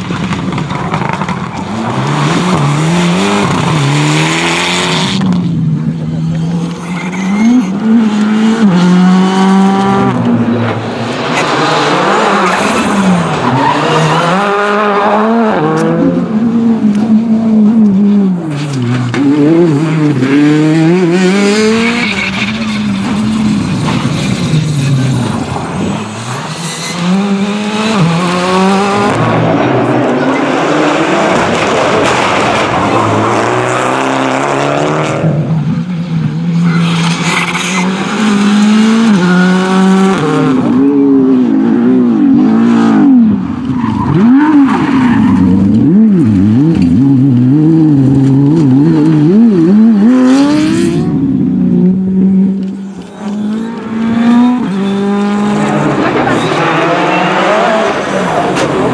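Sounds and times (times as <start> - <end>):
cars passing: 0.0 - 58.9
rally car engines revving: 0.0 - 58.9.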